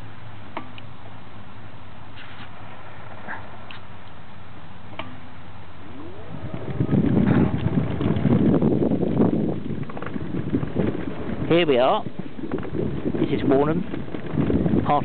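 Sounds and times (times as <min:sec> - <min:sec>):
wooden boardwalk planks clattering: 0:04.9 - 0:15.0.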